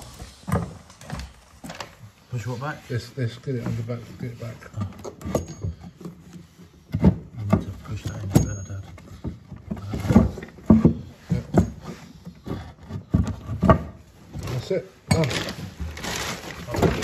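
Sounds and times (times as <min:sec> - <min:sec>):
knocks and scrapes on plastic pipework: 0:00.0 - 0:17.0.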